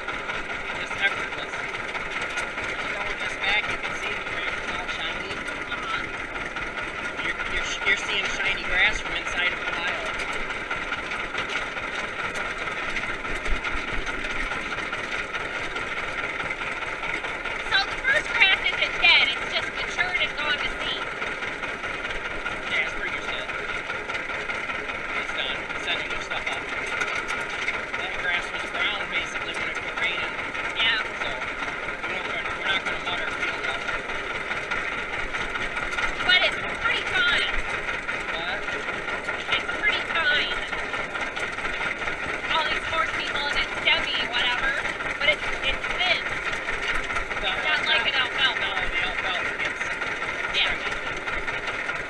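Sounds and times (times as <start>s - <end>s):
tractor engine running: 0.0s - 52.0s.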